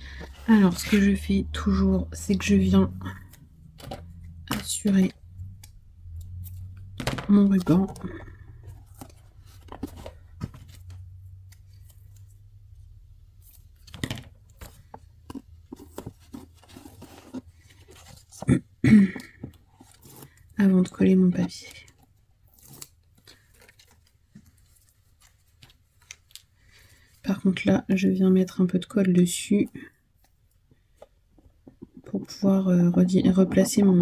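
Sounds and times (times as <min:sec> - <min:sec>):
rustling and scraping of cardboard: 0:08.5 - 0:12.4, 0:13.4 - 0:18.5, 0:19.4 - 0:20.5
tape being peeled: 0:22.4 - 0:26.6.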